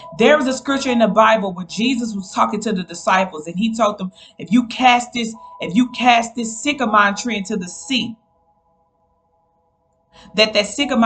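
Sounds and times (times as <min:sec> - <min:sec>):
woman's voice: 0:00.0 - 0:08.2, 0:10.2 - 0:11.0.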